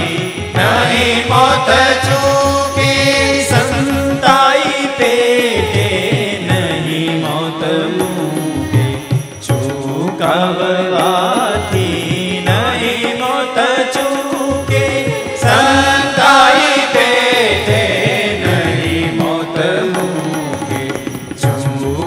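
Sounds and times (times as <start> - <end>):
keyboard: 0.0 - 22.0
man singing devotional song: 0.0 - 22.0
tabla: 0.0 - 22.0
violin: 0.0 - 22.0.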